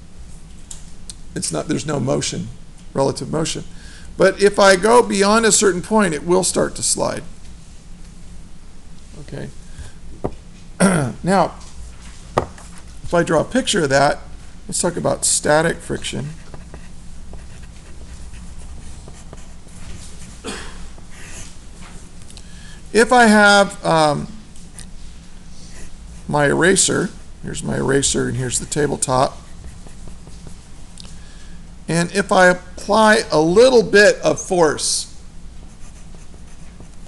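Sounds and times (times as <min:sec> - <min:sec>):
steady low hum: 0:00.0 - 0:37.0
breath: 0:03.8 - 0:04.2, 0:09.6 - 0:10.0, 0:22.4 - 0:22.9, 0:31.1 - 0:31.6
pencil scratching on paper: 0:16.3 - 0:20.4, 0:28.8 - 0:30.6, 0:35.7 - 0:37.0.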